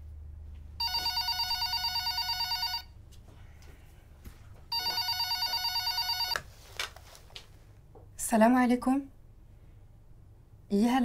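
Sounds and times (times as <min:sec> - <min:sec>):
telephone ringing with electronic warble: 0:00.8 - 0:03.0, 0:04.7 - 0:06.4.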